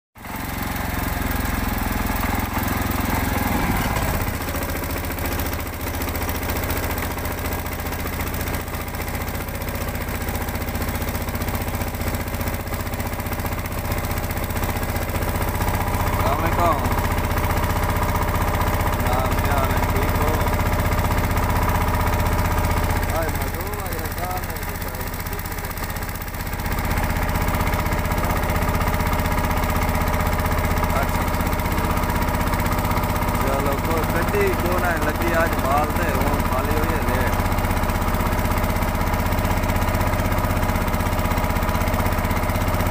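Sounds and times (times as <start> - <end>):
boat engine droning: 0.3 - 42.9
voices: 16.1 - 17.0, 18.9 - 20.6, 23.0 - 25.8, 33.4 - 37.4.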